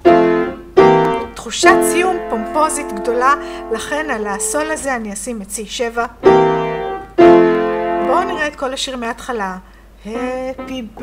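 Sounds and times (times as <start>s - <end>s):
piano chords: 0.0s - 5.0s, 6.2s - 8.6s, 10.1s - 11.0s.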